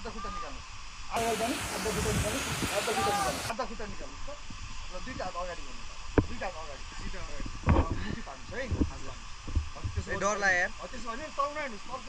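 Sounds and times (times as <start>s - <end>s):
thumps on microphone: 6.1s - 6.4s, 7.6s - 10.1s.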